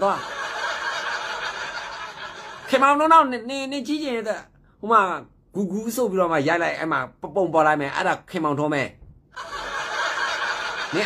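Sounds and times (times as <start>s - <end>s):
man speaking: 2.7s - 9.0s.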